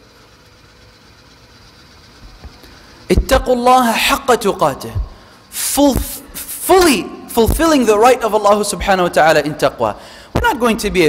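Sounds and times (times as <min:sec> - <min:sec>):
low hum: 0:00.1 - 0:11.0.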